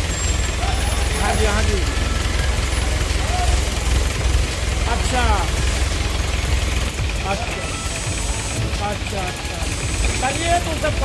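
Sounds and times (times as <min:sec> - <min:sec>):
steady low rumble: 0:00.0 - 0:11.0
workers' voices: 0:00.0 - 0:11.0.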